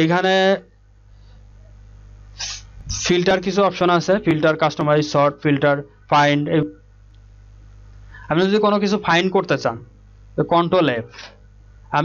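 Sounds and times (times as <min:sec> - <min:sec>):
low steady hum: 0:00.0 - 0:12.0
person sniffing: 0:02.4 - 0:02.8
person talking: 0:02.4 - 0:06.8, 0:08.2 - 0:09.8, 0:10.4 - 0:12.0.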